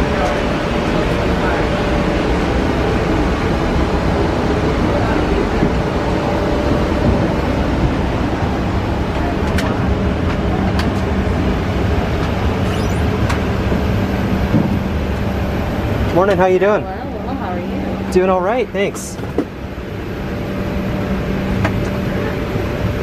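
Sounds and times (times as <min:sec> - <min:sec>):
air-conditioning airflow rushing: 0:00.0 - 0:23.0.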